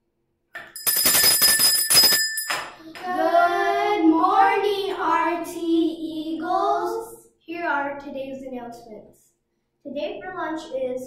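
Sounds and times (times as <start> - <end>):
hand bell ringing rapidly: 0.7 - 2.8
children singing together: 2.8 - 7.0.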